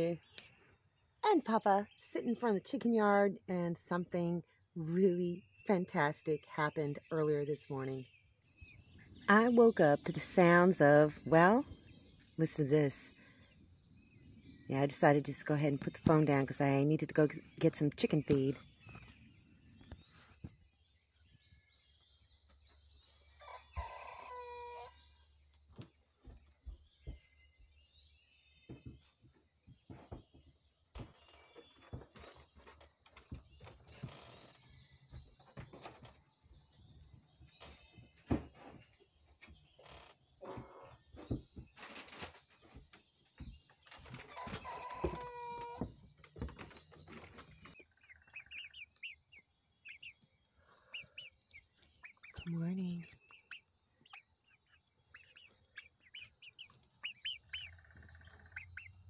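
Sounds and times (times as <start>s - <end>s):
small birds chirping: 0.0s - 59.0s.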